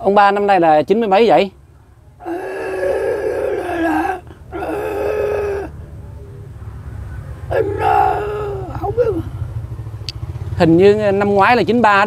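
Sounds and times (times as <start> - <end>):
old man's strained voice: 2.2 - 5.8, 7.5 - 9.5.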